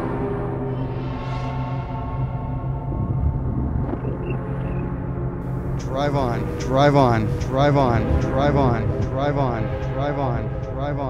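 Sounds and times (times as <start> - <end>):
drone: 0.0 - 11.0
car cabin rumble: 2.6 - 6.6.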